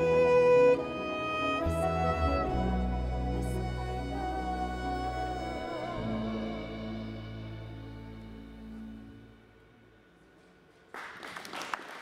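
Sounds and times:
applause: 10.7 - 12.0.

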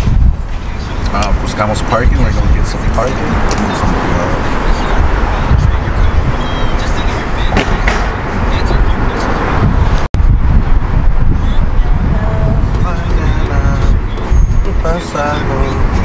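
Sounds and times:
car engine and tyres rumbling: 0.0 - 16.0.

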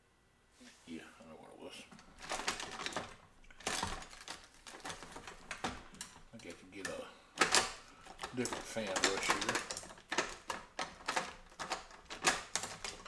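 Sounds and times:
paintbrushes clattering: 1.9 - 13.0.

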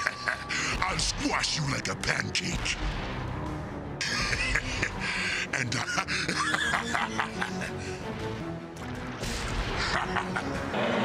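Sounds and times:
cartoon background music: 0.0 - 11.0.

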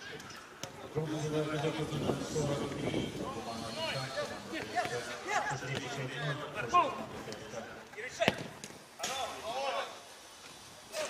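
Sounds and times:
players shouting calls: 0.2 - 10.1.

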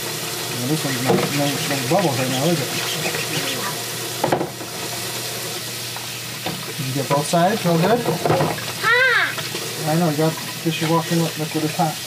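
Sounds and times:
dishes being scrubbed: 0.8 - 3.8
tap running into sink: 0.8 - 4.9, 5.9 - 11.3
dish knock: 4.2 - 4.6, 8.0 - 8.6.

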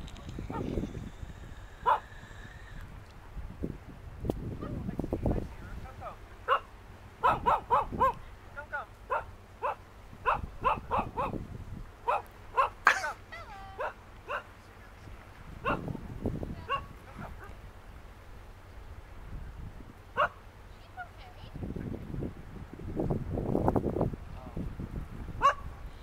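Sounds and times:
dog-like barks or yelps: 1.8 - 2.1, 6.5 - 8.2, 9.1 - 11.4, 12.1 - 14.5, 15.6 - 15.9, 16.7 - 17.5, 20.2 - 20.4, 25.4 - 25.7.

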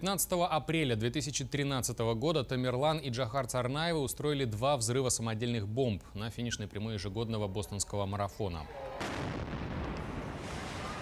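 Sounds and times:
bomb explosion: 9.0 - 11.0.

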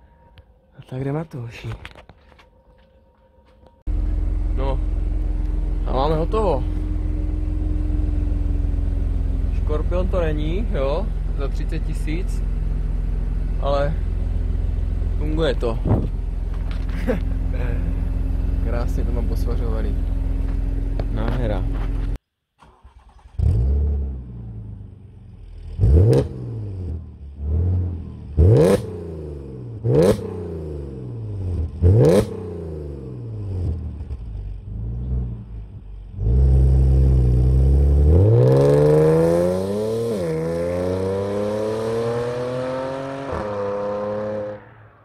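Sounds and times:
car engine idling and revving: 3.6 - 45.0
car accelerating hard: 36.2 - 44.8.

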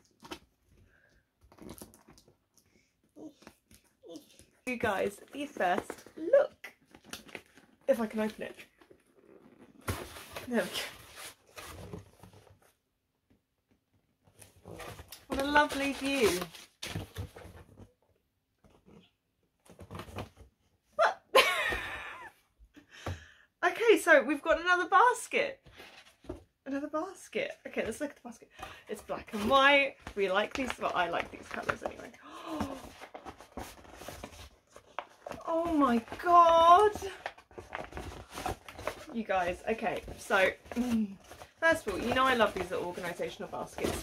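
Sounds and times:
cardboard box rustling and scraping: 8.9 - 12.7.

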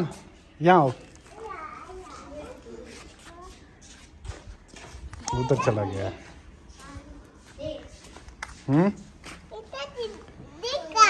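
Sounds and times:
young child's voice: 1.3 - 3.6, 6.7 - 8.1, 9.5 - 11.0.

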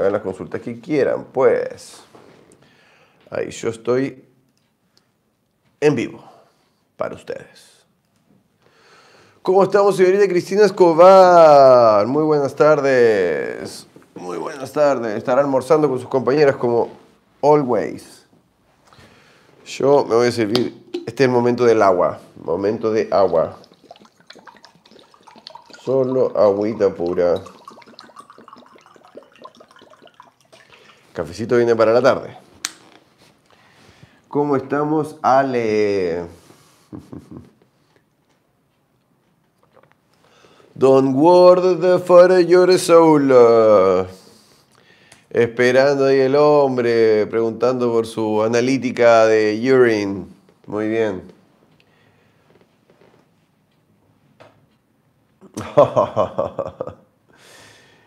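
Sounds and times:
water pouring sounds: 22.5 - 31.7.

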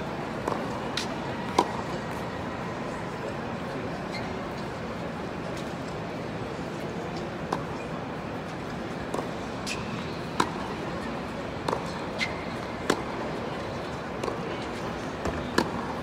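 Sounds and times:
murmur of spectators' voices: 0.0 - 16.0
balls bouncing on hard court: 11.6 - 13.2, 15.2 - 16.0
rackets striking tennis balls: 11.6 - 13.2, 14.2 - 16.0.

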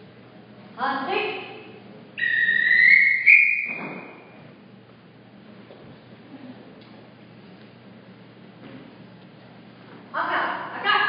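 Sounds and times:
referee's whistle long blast: 2.2 - 4.2.

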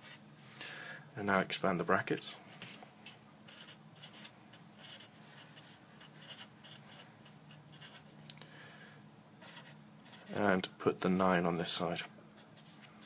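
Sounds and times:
marker writing on paper: 3.5 - 8.1, 9.4 - 10.4.

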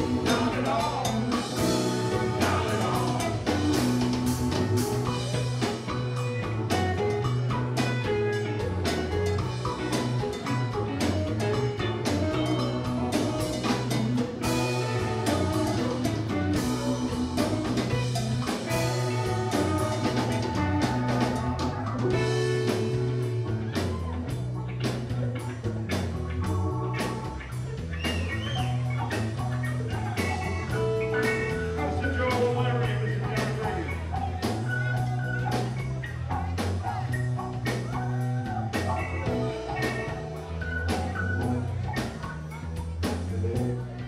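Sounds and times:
electric guitar: 0.0 - 44.0
live blues band: 0.0 - 44.0
steady drum beat: 0.0 - 44.0
sustained bass notes: 0.0 - 44.0.

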